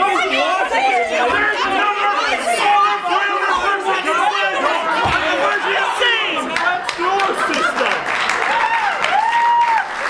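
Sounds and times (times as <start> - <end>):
overlapping loud voices: 0.0 - 10.0.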